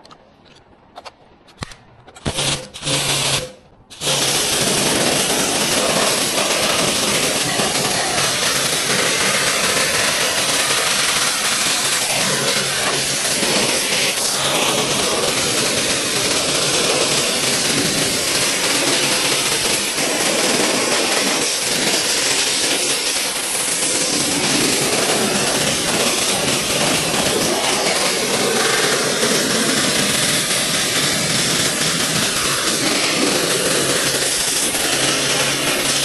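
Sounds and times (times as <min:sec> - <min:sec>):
pressure washer spraying water: 0:02.3 - 0:36.0
pump humming: 0:02.3 - 0:36.0.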